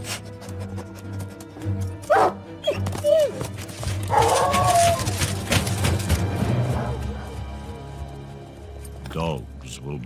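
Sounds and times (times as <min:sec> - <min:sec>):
hound howling: 0:02.1 - 0:05.3.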